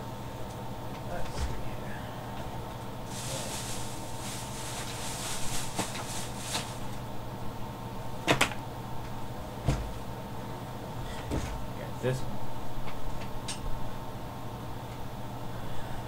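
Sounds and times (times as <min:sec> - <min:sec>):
steady low hum: 0:00.0 - 0:16.0
rustling objects: 0:03.1 - 0:07.0.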